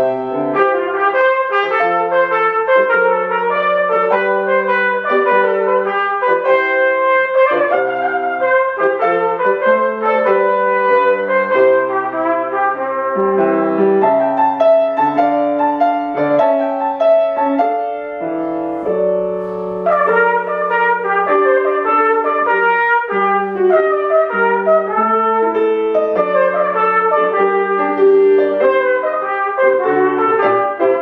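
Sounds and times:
piano accompaniment: 0.0 - 31.0
trumpet melody: 0.0 - 31.0.

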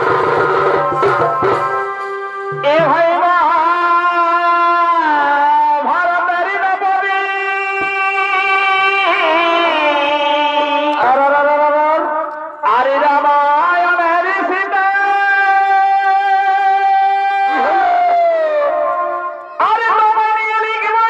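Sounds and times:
double-reed pipe melody over loudspeakers: 0.0 - 21.0.

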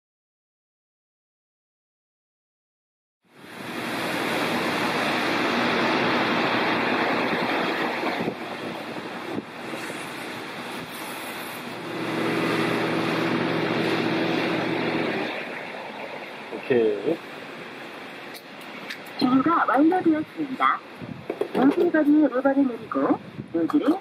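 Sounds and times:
low hum: 3.6 - 18.2.

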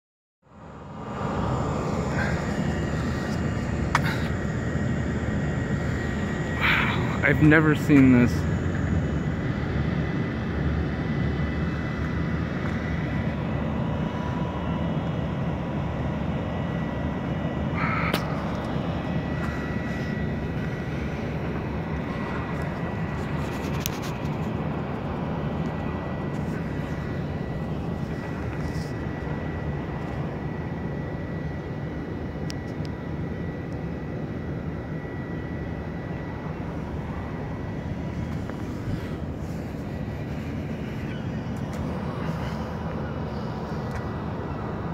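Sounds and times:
faint high whine: 0.5 - 44.9
ship engine drone: 0.5 - 44.9.

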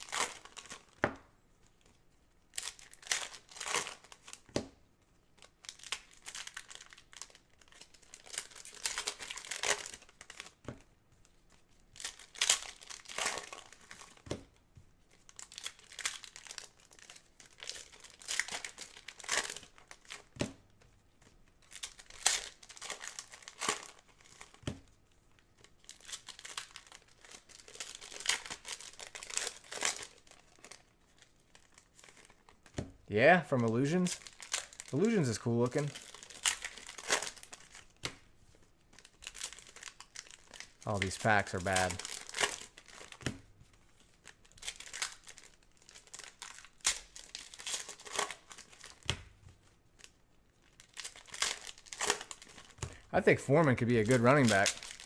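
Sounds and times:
foil wrappers crinkling and tearing: 0.0 - 1.0, 2.5 - 4.5, 5.4 - 10.6, 11.3 - 14.2, 15.1 - 24.6, 25.3 - 32.7, 33.5 - 55.0.

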